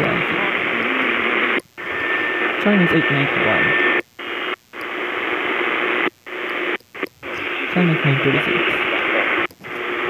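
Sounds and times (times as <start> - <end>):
radio static and hiss: 0.0 - 10.0.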